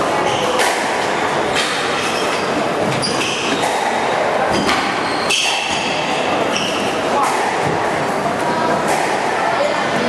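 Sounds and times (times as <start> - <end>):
loud din of hall: 0.0 - 10.0.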